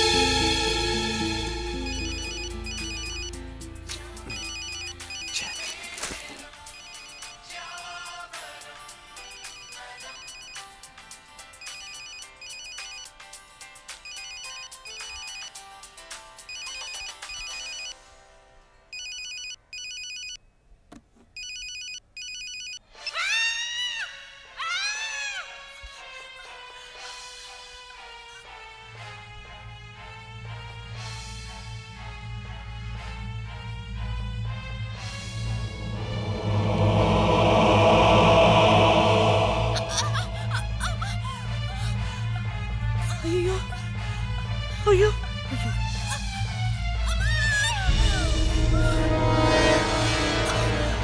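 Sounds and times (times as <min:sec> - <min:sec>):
swooping rising and falling tones: 0:00.0 - 0:05.5, 0:34.6 - 0:41.8
background music: 0:00.0 - 0:19.0, 0:22.8 - 0:51.0
telephone ringing with electronic trill: 0:01.8 - 0:05.9, 0:06.6 - 0:07.7, 0:09.2 - 0:10.7, 0:11.6 - 0:13.2, 0:14.0 - 0:15.6, 0:16.5 - 0:18.0, 0:19.0 - 0:20.4, 0:21.4 - 0:22.8.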